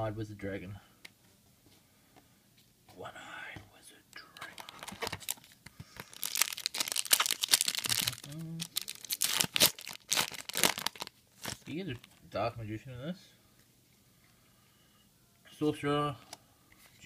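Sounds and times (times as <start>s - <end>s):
foil wrapper tearing and crinkling: 4.4s - 11.7s.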